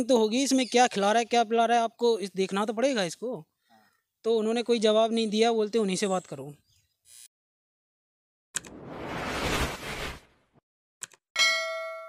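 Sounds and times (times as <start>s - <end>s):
swoosh: 8.6s - 10.6s
notification bell ding: 11.4s - 12.0s.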